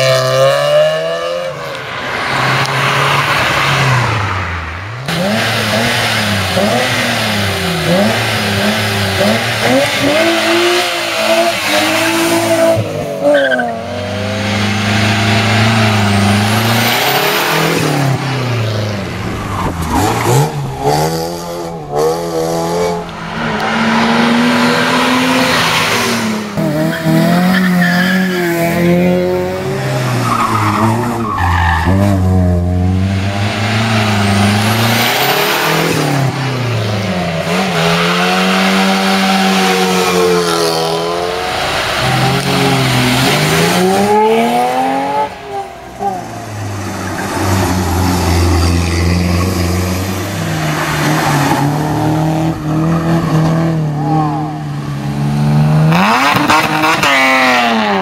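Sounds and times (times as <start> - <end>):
car engines revving hard: 0.0 - 58.0.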